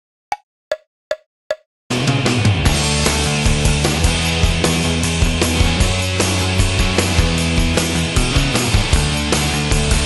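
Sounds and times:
rock band playing: 1.9s - 10.0s.

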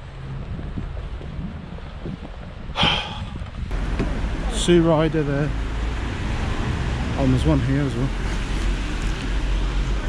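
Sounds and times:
wind buffeting microphone: 0.0s - 4.8s.

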